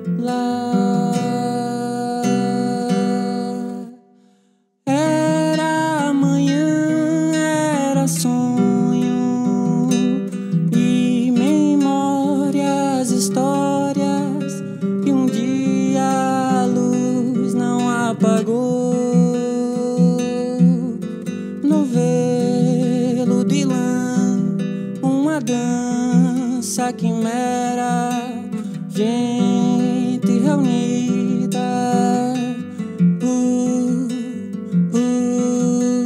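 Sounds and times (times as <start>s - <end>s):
man singing: 0.0s - 4.1s, 4.9s - 36.0s
classical guitar chords: 0.0s - 36.0s.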